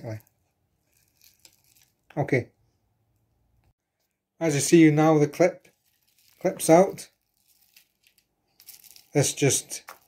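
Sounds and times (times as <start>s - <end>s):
bubble wrap crinkling: 0.0s - 2.2s, 5.6s - 10.0s.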